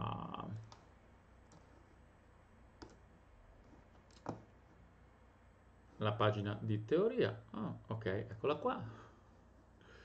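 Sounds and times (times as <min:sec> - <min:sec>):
computer mouse clicks: 0:00.6 - 0:01.7, 0:02.8 - 0:04.5.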